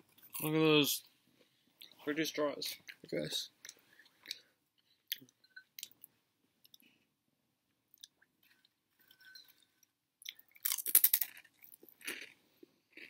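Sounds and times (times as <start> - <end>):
chewing crunchy snacks: 10.2 - 13.0.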